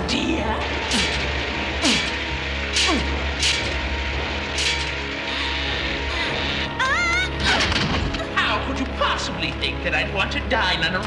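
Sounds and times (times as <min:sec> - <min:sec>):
background music with low drone: 0:00.0 - 0:11.0.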